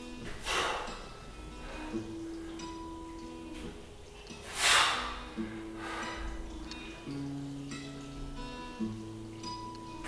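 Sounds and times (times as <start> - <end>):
background guitar music: 0.0 - 10.0
man exhaling forcefully: 0.4 - 1.0, 4.5 - 6.3.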